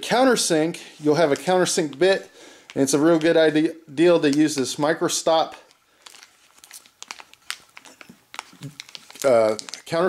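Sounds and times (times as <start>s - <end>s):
plastic bag crinkling: 1.0s - 10.0s.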